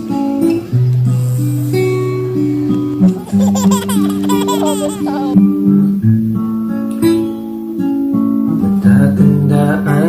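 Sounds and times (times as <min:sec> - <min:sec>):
acoustic guitar music: 0:00.0 - 0:10.0
baby giggling: 0:03.1 - 0:05.4.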